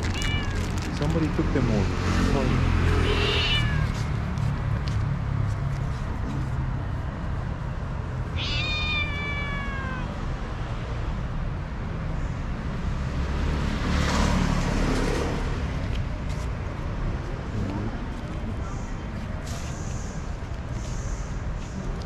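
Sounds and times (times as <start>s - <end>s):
cat meowing: 0.0s - 0.8s, 3.0s - 4.1s, 8.2s - 10.2s
vehicle passing: 0.0s - 11.1s, 12.7s - 21.7s
street traffic rumbling: 0.0s - 22.0s.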